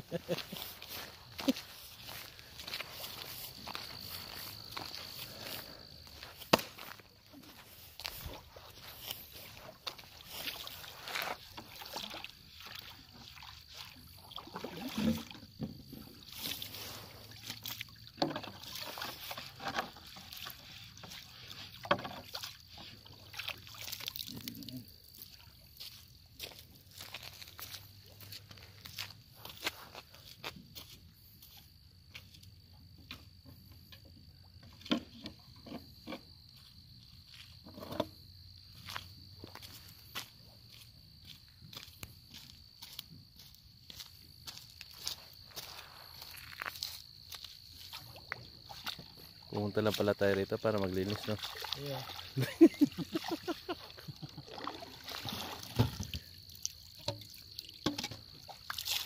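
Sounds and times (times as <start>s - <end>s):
water sloshing: 0.0s - 29.6s, 45.6s - 59.0s.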